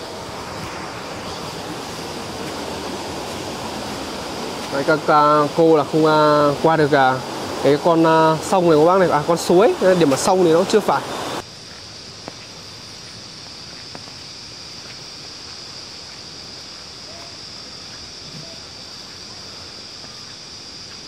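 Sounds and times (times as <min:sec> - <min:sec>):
mountain stream rushing: 0:00.0 - 0:11.4
constant high-pitched whine: 0:00.0 - 0:21.0.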